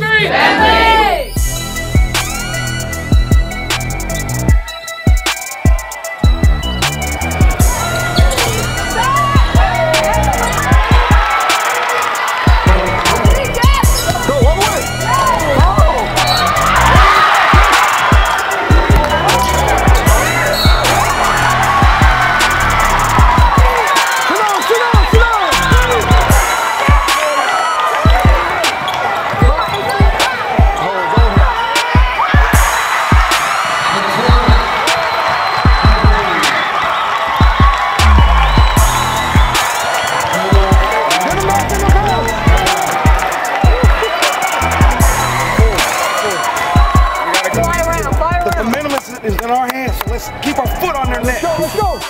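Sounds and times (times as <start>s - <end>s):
music with steady beat: 1.3s - 36.6s, 37.4s - 52.0s
shoe squeaks on court: 16.2s - 16.5s
basketball dribbling: 18.0s - 19.2s.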